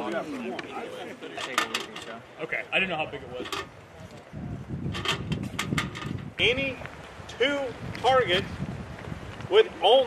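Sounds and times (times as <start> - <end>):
wind rumble on microphone: 3.0 - 10.0.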